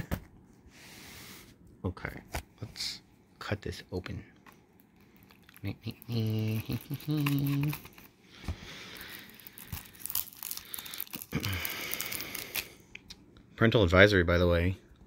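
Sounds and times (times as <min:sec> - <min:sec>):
shrink wrap crinkling and tearing: 0:04.5 - 0:12.8.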